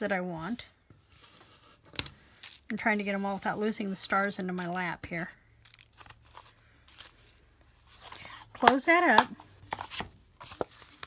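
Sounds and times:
paper pieces ticking and rustling: 5.6 - 7.1.

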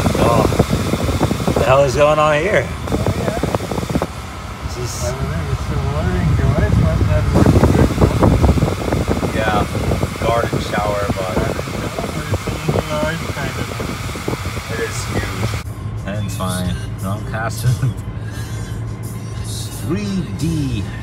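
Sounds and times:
road and engine rumble inside car: 0.0 - 21.0.

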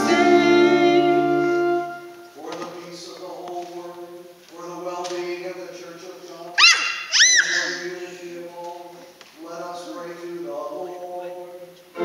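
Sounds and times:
church organ chords: 0.0 - 2.3
loud short squeals: 6.6 - 7.9.

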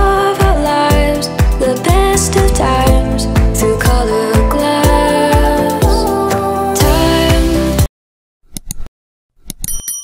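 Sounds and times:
mouse clicks: 8.5 - 9.7
short bell ding: 9.6 - 10.0.

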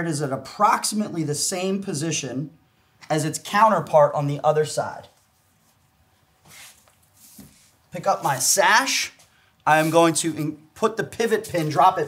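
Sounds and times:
soft rustle: 5.0 - 10.2.

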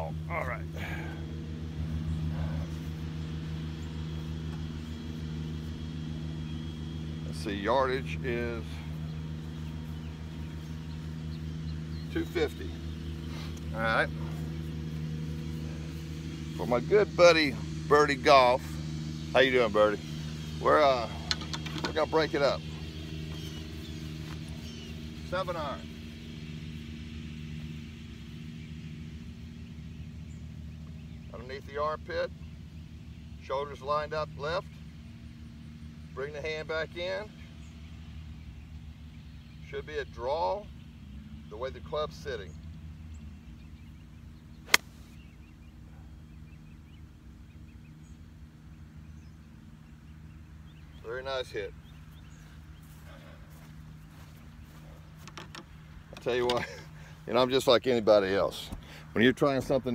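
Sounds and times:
golf cart engine running: 0.0 - 59.9.

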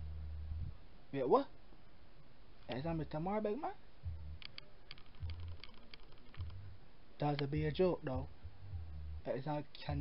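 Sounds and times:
light irregular clicks: 4.4 - 7.6.

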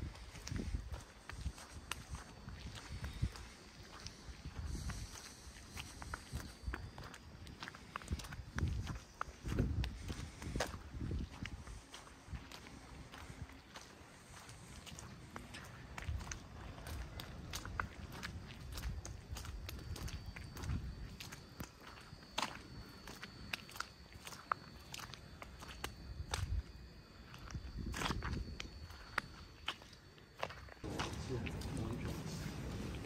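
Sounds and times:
footsteps on snow: 30.8 - 33.0
low rumble: 30.8 - 33.0.

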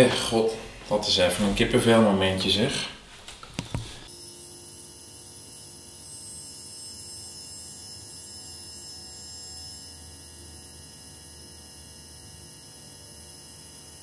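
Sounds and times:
electrical hum and buzz: 0.0 - 4.1.

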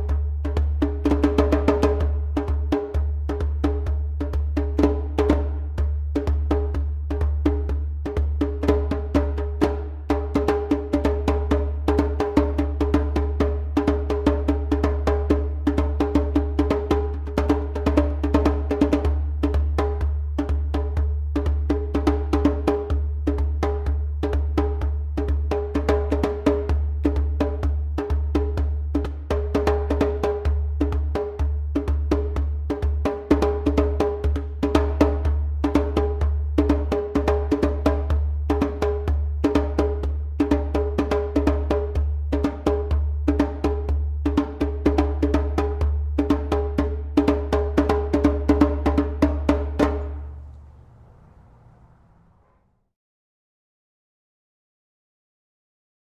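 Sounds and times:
hand drum played fast: 0.0 - 50.4.

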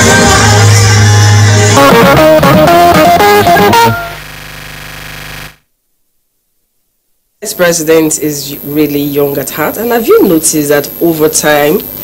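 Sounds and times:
background music held chord: 0.0 - 4.2.

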